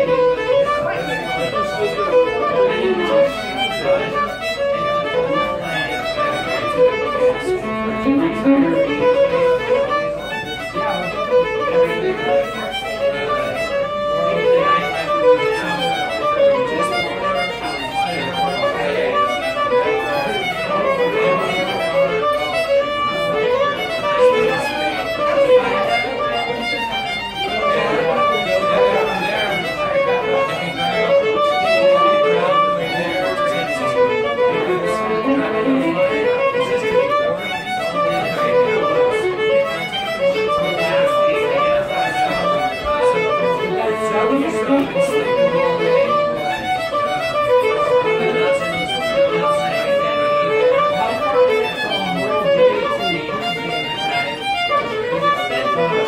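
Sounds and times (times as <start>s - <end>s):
bowed fiddle tune: 0.0s - 56.0s.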